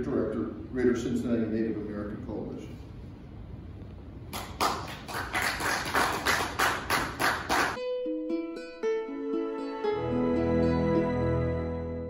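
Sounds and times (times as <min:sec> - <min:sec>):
hand clapping: 0:04.3 - 0:07.8.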